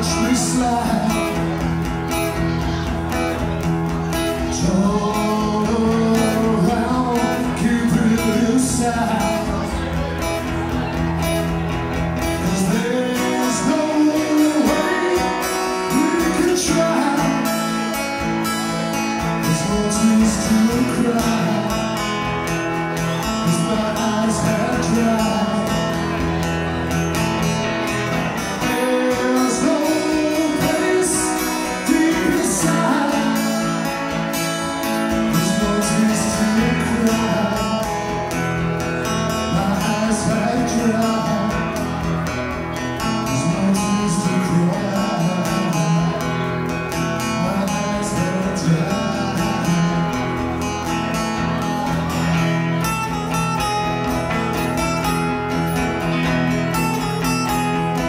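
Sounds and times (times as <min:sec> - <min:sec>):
man singing: 0:00.0 - 0:55.2
acoustic guitars playing: 0:00.0 - 0:58.0.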